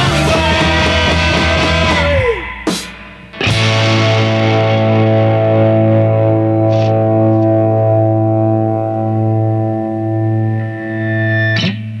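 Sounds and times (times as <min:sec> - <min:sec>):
distorted electric guitar chord ringing: 0:00.0 - 0:12.0
sharp drum hit: 0:01.7 - 0:03.8.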